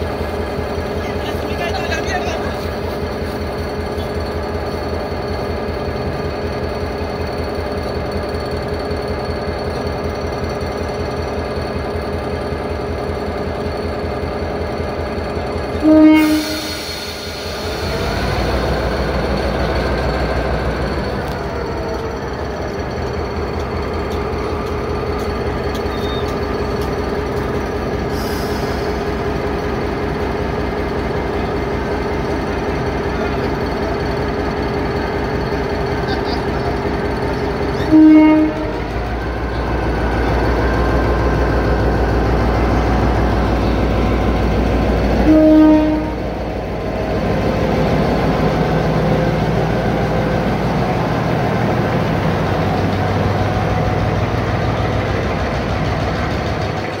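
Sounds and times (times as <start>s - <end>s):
diesel locomotive engine: 0.0s - 57.0s
locomotive horn blast: 15.8s - 16.8s, 37.7s - 39.0s, 45.1s - 46.4s.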